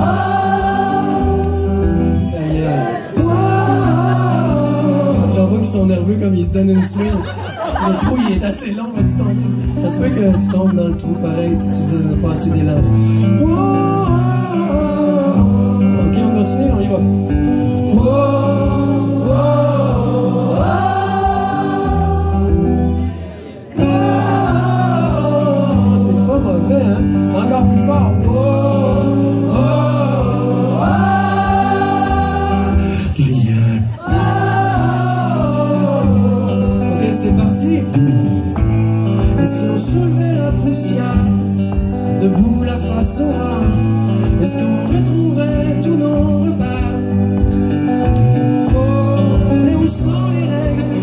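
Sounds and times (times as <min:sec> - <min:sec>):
man singing into microphone: 0:00.0 - 0:09.2, 0:09.8 - 0:22.8, 0:23.8 - 0:38.0, 0:39.3 - 0:47.3, 0:48.5 - 0:51.0
acoustic guitar: 0:00.0 - 0:51.0.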